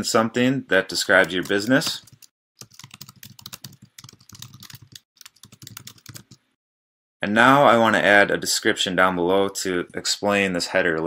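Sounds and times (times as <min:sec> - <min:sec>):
computer keyboard typing: 0:01.2 - 0:06.4.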